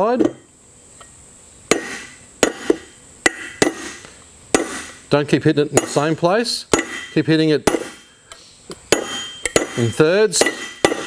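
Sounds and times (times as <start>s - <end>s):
hammer striking metal race: 8.9s - 11.0s.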